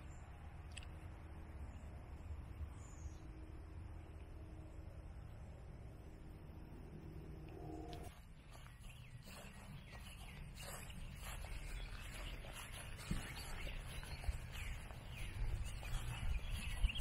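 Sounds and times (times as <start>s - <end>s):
steady low rumble: 0.0s - 17.0s
birds chirping and calling: 8.3s - 17.0s.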